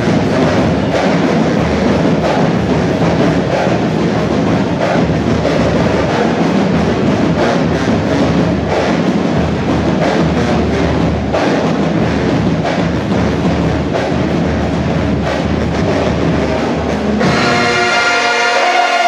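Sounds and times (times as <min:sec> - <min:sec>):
marching band drums: 0:00.0 - 0:19.0
marching band sustained chord: 0:00.0 - 0:19.0.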